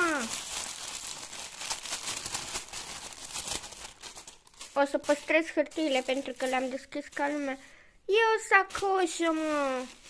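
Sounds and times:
tissue paper rustling and crinkling: 0:00.0 - 0:10.0.

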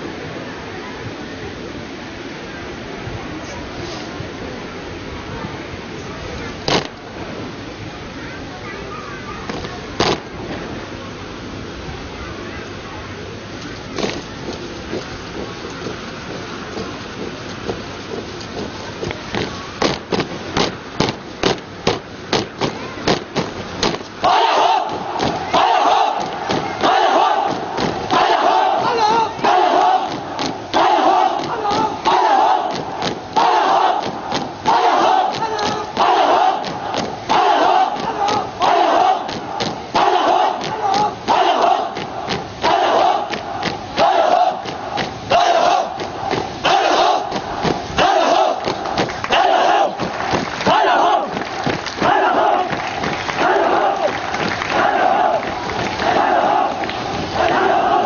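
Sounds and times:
crowd shouting in unison: 0:24.2 - 0:58.0
sharp knocks or claps: 0:29.8 - 0:30.8, 0:34.0 - 0:37.4.

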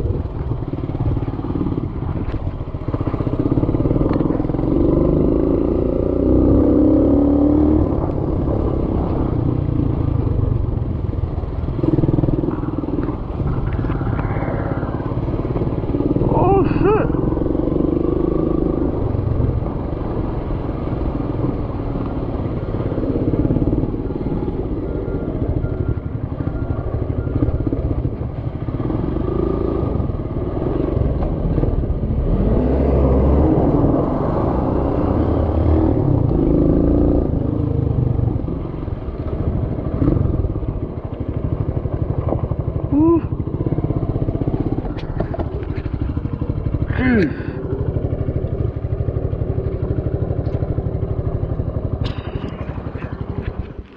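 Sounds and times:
small motorcycle engine: 0:00.0 - 0:53.9
wind rumble on microphone: 0:00.0 - 0:53.9.

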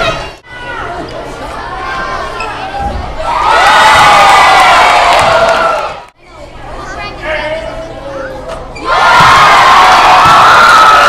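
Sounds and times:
children cheering and screaming: 0:08.8 - 0:11.0.

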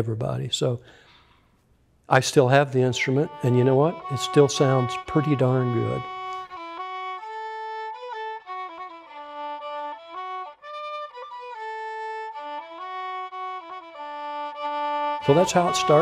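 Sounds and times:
solo violin slow melody: 0:02.6 - 0:16.0.

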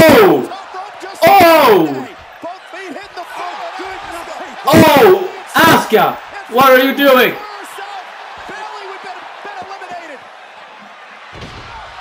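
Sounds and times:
man exclaiming: 0:00.0 - 0:00.6, 0:01.2 - 0:02.1, 0:04.7 - 0:07.6.

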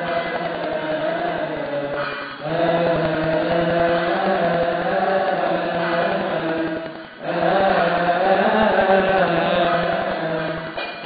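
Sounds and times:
deacons chanting a hymn in unison: 0:00.0 - 0:11.0.

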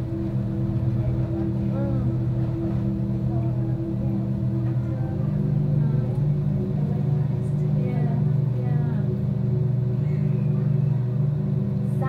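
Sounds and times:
aquarium air pump humming: 0:00.0 - 0:12.0
faint voices: 0:00.0 - 0:12.0.

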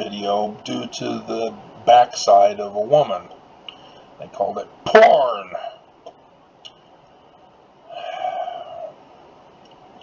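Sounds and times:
held wordless vocal sound: 0:07.9 - 0:09.0.

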